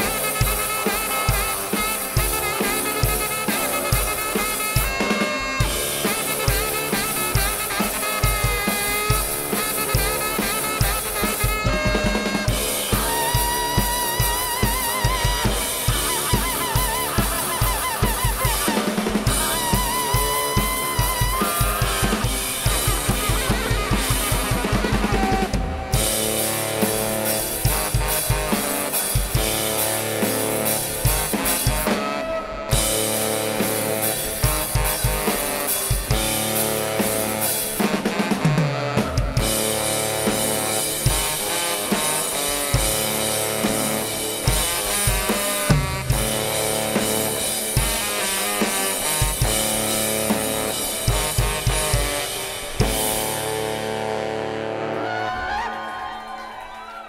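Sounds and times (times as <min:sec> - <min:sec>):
drum kit with fast kick drum: 0:00.0 - 0:54.4
saxophones playing: 0:00.0 - 0:56.0.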